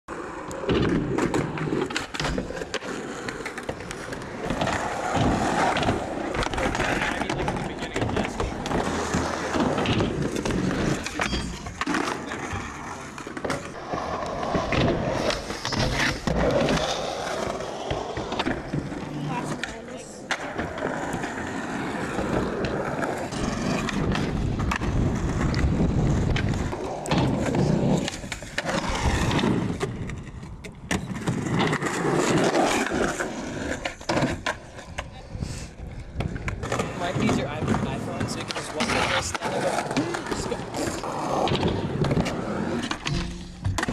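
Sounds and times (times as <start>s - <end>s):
skateboard wheels rolling on concrete: 0.1s - 43.9s
skateboard clacks: 0.2s - 43.9s.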